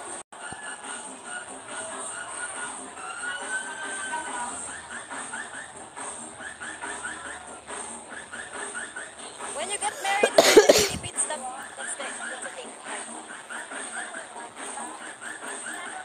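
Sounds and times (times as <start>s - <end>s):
crowd chatter: 0.0s - 16.0s
faint music: 0.0s - 16.0s.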